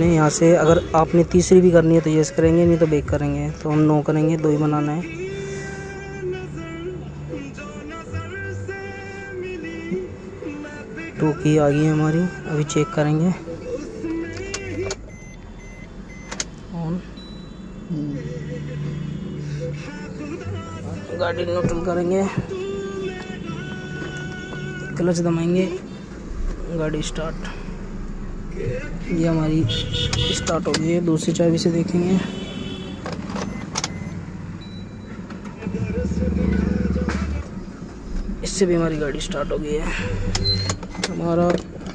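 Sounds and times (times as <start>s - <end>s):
car keys jangling: 33.0s - 34.0s
car starter cranking engine starting: 33.2s - 41.9s.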